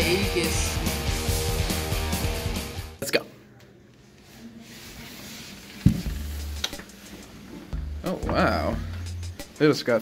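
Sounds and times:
faint music with bass line: 0.0s - 10.0s.

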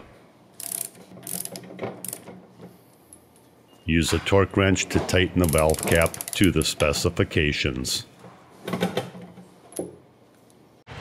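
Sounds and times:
ratchet wrench clicking: 0.6s - 2.3s, 5.4s - 6.6s.

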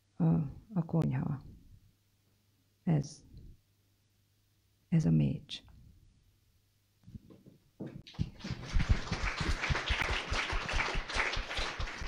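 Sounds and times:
audience applauding: 8.1s - 12.0s.

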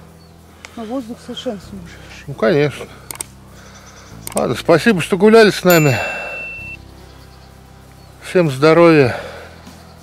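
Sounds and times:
high electronic beep: 5.7s - 6.8s.

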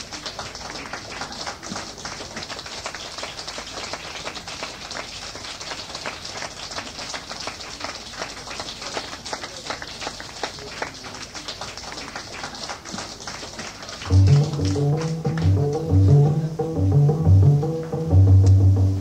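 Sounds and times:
audience applauding: 0.0s - 18.2s.

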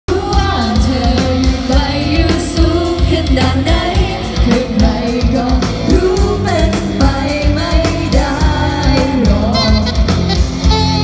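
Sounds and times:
live pop band playing: 0.1s - 11.0s
woman singing: 0.1s - 11.0s.

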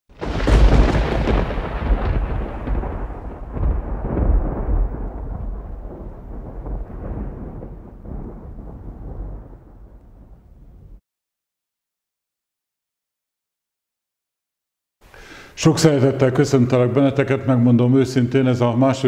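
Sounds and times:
deep thunder boom rumbling: 0.1s - 11.0s.

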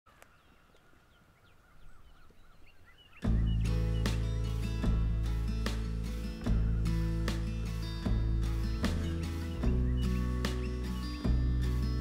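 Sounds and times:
faint birds chirping: 0.1s - 12.0s
music with deep bass and chords: 3.2s - 12.0s.

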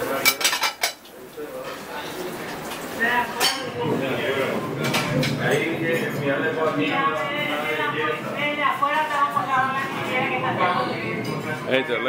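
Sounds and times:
plates and cutlery clinking: 0.0s - 1.9s, 2.8s - 7.9s.

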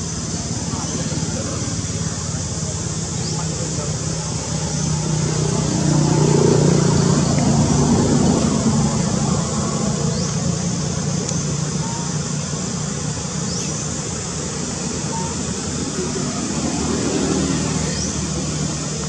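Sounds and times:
road noise: 0.0s - 19.0s
vehicle engine passing: 0.4s - 12.3s, 15.5s - 19.0s.

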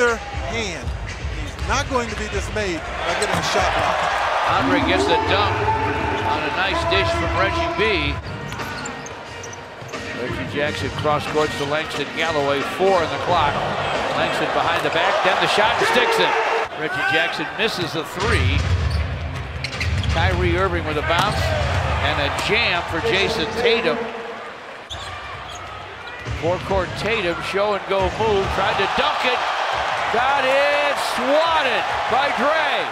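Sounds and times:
crowd hubbub: 3.2s - 7.7s.

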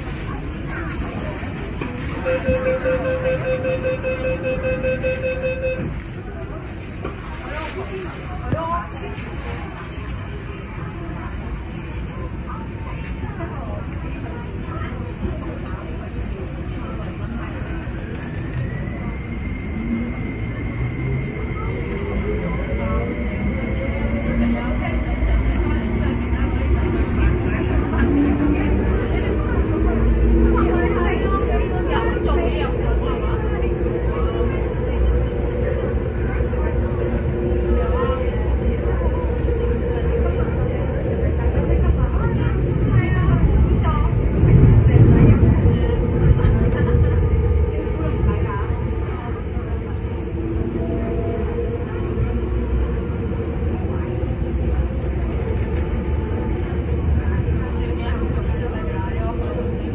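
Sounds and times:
train running gear rumble: 0.0s - 3.8s, 4.4s - 59.9s.

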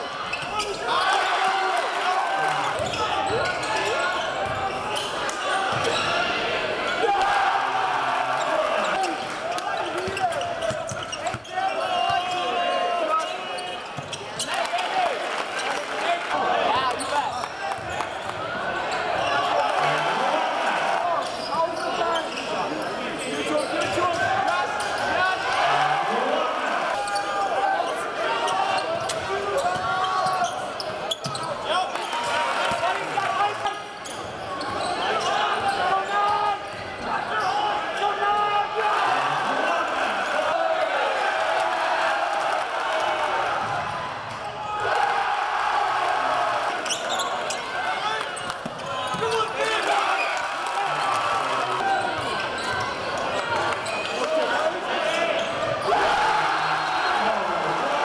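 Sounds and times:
crowd voices: 0.0s - 58.0s.

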